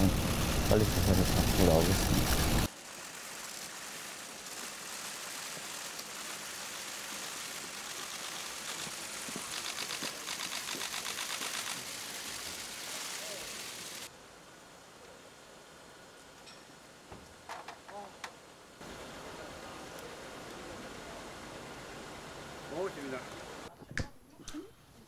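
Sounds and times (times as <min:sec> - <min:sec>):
crowd and street noise: 0:00.0 - 0:02.7.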